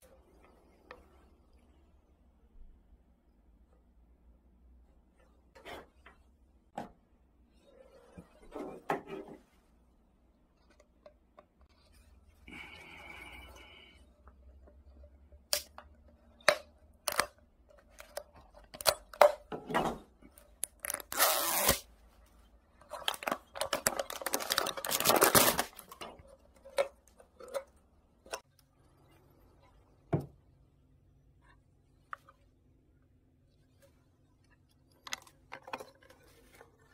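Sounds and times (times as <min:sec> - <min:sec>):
plastic crackling: 0:20.5 - 0:21.9, 0:22.8 - 0:28.4
plastic label peeling and tearing: 0:20.6 - 0:21.9, 0:23.0 - 0:26.0.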